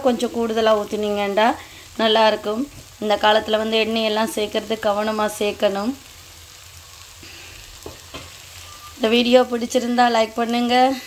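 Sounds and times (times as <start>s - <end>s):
food sizzling in a wok: 0.0s - 11.0s.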